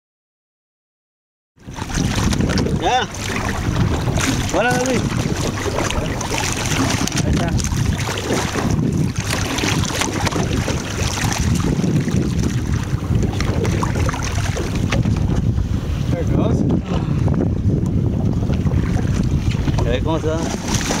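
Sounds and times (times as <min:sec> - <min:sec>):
water splashing: 0:01.6 - 0:15.9, 0:18.2 - 0:21.0
water sloshing along boat: 0:01.6 - 0:21.0
wind buffeting microphone: 0:01.6 - 0:21.0.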